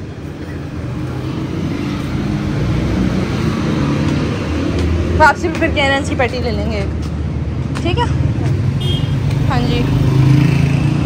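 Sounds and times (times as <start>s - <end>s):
vehicle engines rumbling: 0.0s - 11.0s.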